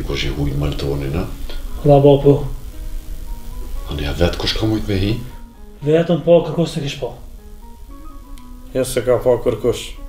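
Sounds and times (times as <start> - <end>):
man speaking: 0.0 - 2.6, 3.8 - 7.3
soft background music: 0.0 - 10.0.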